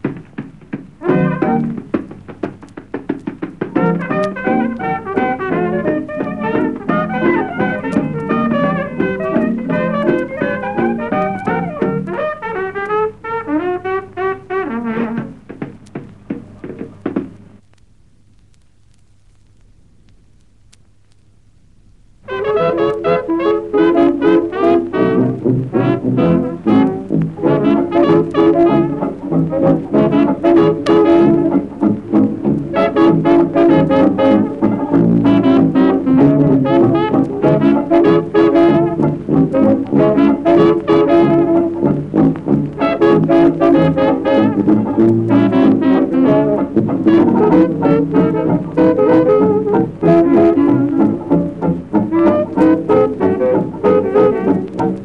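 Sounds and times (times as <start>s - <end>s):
traditional jazz band: 0.0s - 19.6s, 22.2s - 55.0s
trombone: 1.0s - 2.4s, 3.2s - 15.6s, 22.3s - 55.0s
trumpet: 1.0s - 15.7s, 22.2s - 55.0s
faint hum: 10.9s - 28.0s.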